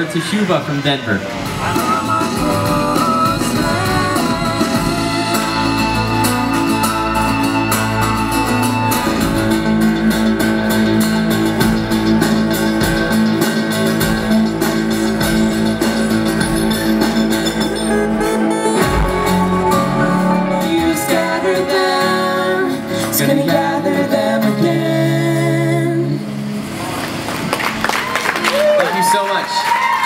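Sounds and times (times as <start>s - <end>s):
acoustic guitar: 1.2s - 28.1s
electric guitar: 1.2s - 28.8s.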